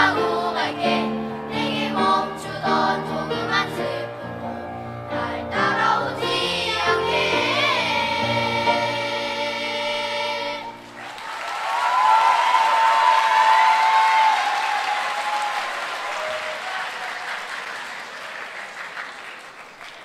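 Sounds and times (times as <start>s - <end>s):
children's choir chord: 0.0s - 10.8s
audience applauding: 10.8s - 20.0s.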